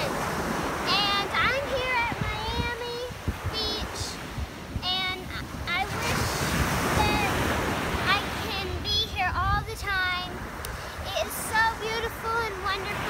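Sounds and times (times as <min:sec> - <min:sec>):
ocean surf breaking: 0:00.0 - 0:13.0
wind buffeting microphone: 0:00.0 - 0:13.0.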